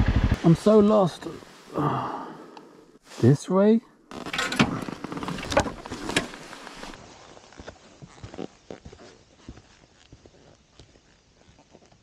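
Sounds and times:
footsteps on stony dirt trail: 0:04.1 - 0:12.0
rustling: 0:04.1 - 0:12.0.

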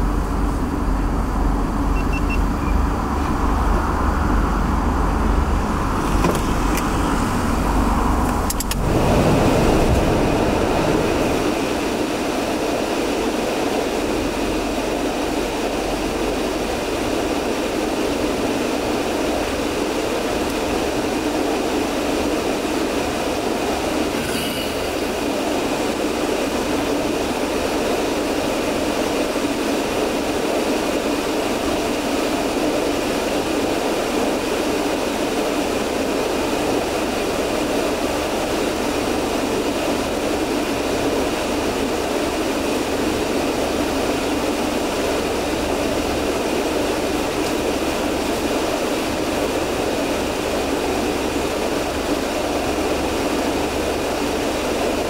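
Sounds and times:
car idling: 0:00.0 - 0:13.3
sharp clicks: 0:08.3 - 0:08.8.

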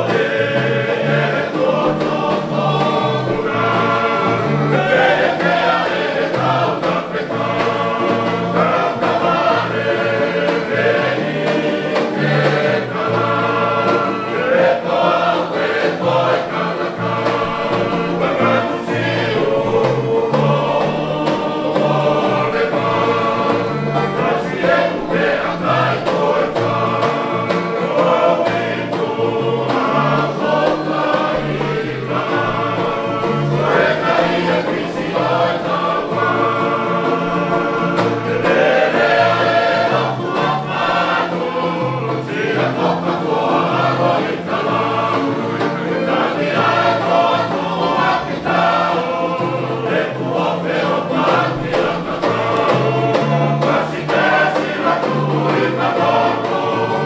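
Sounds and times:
men singing in harmony: 0:00.0 - 0:57.0
strummed guitars ukuleles and banjo: 0:00.0 - 0:57.0.

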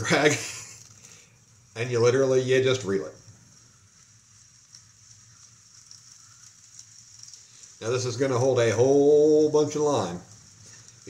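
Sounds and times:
light reel clicks: 0:00.0 - 0:11.0.

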